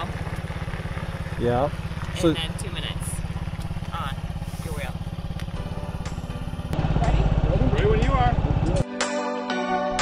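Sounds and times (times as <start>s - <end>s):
motor scooter engine idling: 0.0s - 8.8s.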